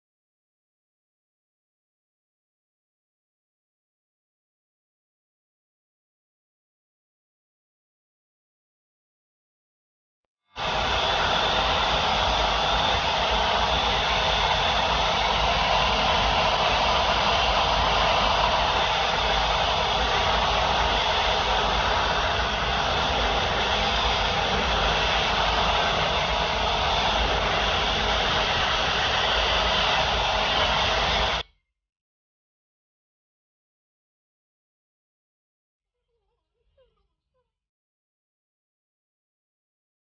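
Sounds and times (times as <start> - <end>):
hair dryers running: 10.6 - 31.4.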